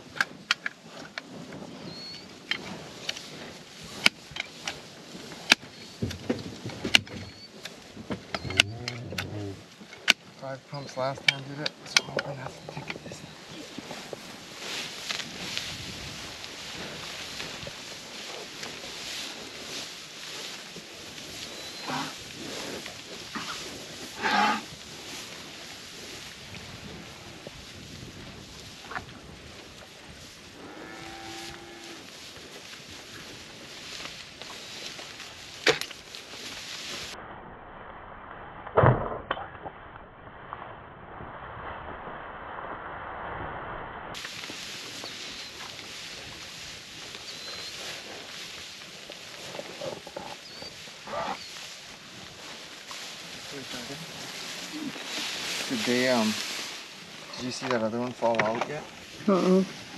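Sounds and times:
steady rustling: 2.6s - 31.1s, 44.2s - 59.9s
cow mooing: 8.4s - 9.5s, 30.6s - 32.0s.

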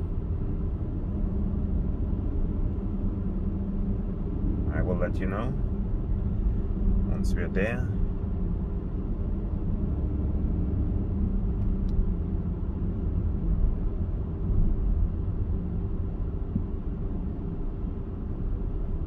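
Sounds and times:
car engine and tyre noise: 0.0s - 19.0s.

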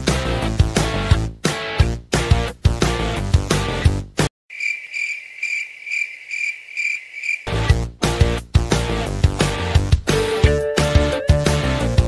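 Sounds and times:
background music: 0.0s - 4.2s, 7.5s - 12.0s
crickets chirping: 4.5s - 7.6s.

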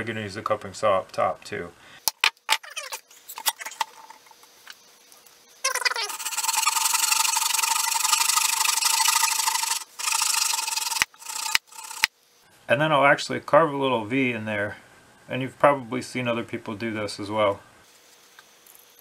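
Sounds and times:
hand saw cutting wood: 6.0s - 12.1s.

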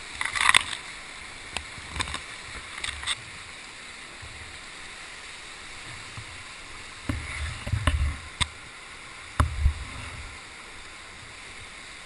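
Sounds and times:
whitewater rushing: 0.0s - 12.0s.

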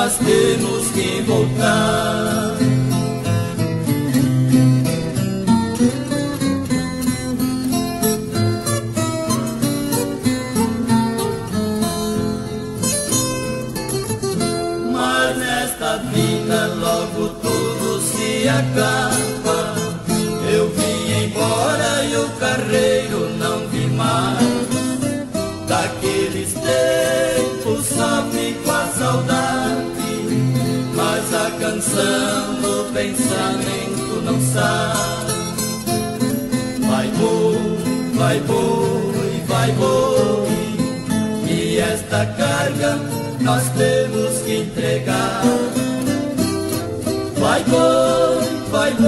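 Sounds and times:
plucked acoustic strings: 0.0s - 49.0s.

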